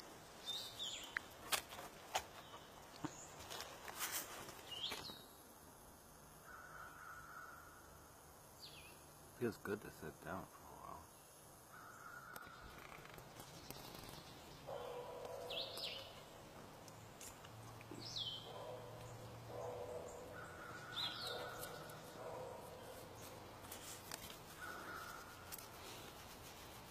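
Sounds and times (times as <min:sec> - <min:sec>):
birds calling: 0:11.1 - 0:26.1.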